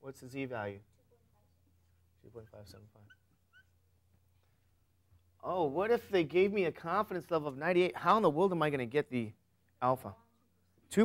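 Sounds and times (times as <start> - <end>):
marker squeaking on whiteboard: 1.8 - 4.3.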